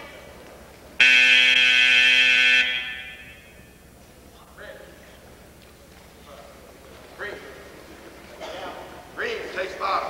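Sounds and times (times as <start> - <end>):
scoreboard buzzer blast: 1.0 - 3.8.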